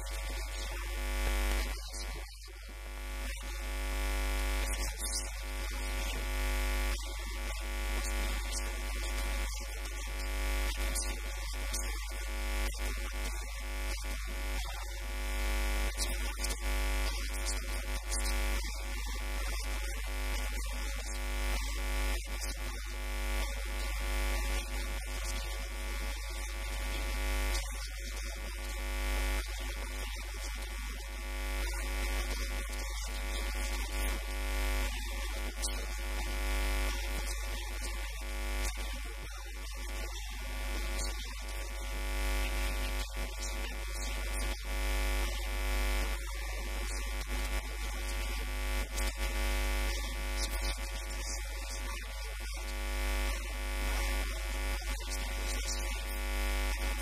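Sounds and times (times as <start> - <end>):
electrical interference buzz: 0.0 - 57.0.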